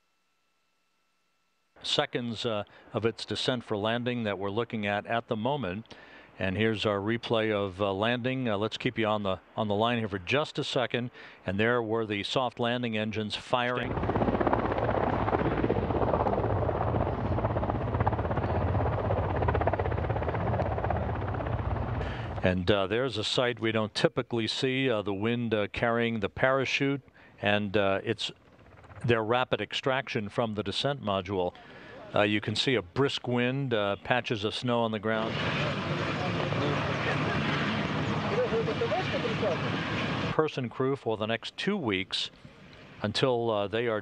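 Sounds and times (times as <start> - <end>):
helicopter rotor chopping: 13.4 - 22.7, 28.2 - 29.4, 35.1 - 40.4
low rumble: 13.8 - 22.4
wind buffeting microphone: 13.8 - 22.4
people talking faintly: 35.3 - 39.9.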